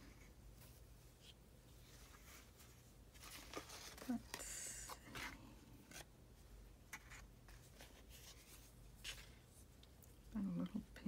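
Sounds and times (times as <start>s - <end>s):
rustling of fabric: 0.0s - 4.4s.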